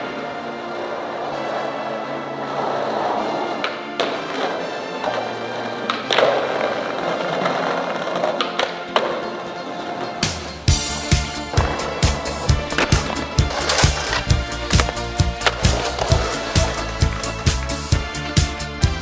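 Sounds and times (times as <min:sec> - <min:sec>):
skateboard clacking: 0:00.0 - 0:18.0
skateboard wheels rolling on pavement: 0:00.0 - 0:18.4
drum beat music: 0:10.5 - 0:19.0.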